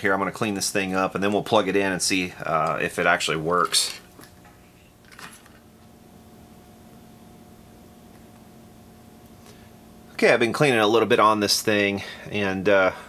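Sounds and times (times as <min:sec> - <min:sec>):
faint steady hum: 0:00.0 - 0:13.0.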